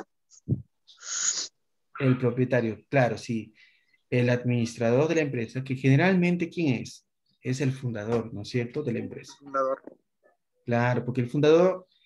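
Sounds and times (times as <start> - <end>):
person's voice over video call: 1.9 - 12.0.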